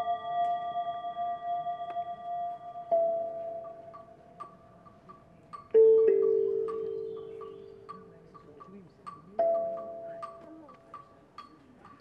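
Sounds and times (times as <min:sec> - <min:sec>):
vibraphone notes ringing: 0:00.0 - 0:12.0.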